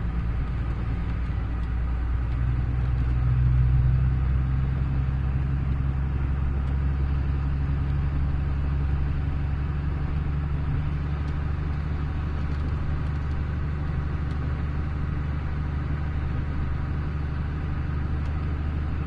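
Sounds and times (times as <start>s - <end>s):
vehicle engine and road noise: 0.0s - 19.0s.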